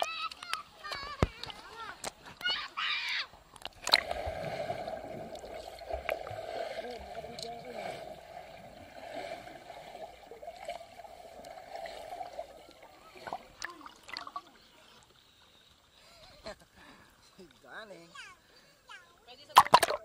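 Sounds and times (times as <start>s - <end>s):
voices above water: 0.0s - 3.8s, 4.7s - 20.0s
splash into pool: 3.7s - 7.8s, 19.5s - 20.0s
muffled underwater noise: 6.4s - 11.2s.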